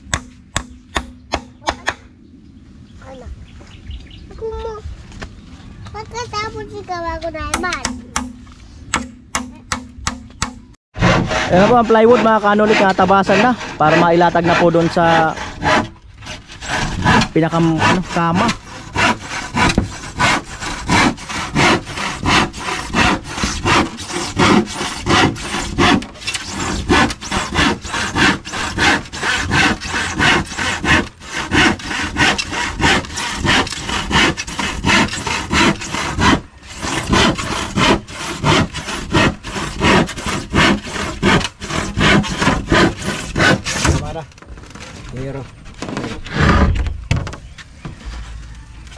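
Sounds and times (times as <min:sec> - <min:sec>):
handsaw cutting plywood: 0:11.0 - 0:44.2, 0:45.8 - 0:46.8.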